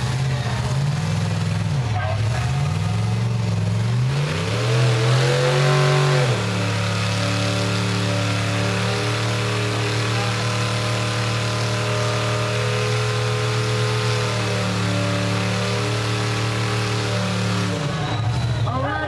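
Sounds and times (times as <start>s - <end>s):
buggy engine revving: 0.0s - 19.0s
tires spinning on rock: 0.0s - 19.0s.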